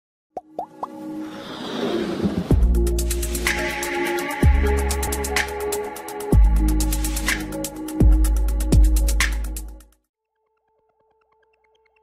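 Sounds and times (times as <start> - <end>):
background music: 0.4 - 12.0.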